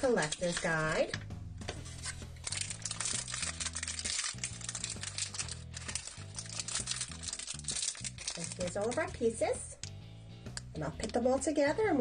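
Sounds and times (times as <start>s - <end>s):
foil bag crinkling: 0.0s - 1.1s, 1.9s - 9.2s
paper leaflet crinkling: 0.0s - 9.2s
background music with low notes: 0.0s - 12.0s.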